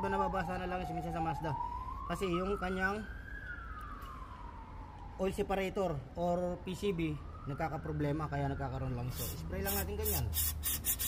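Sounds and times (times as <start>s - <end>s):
siren wailing: 0.0s - 10.4s.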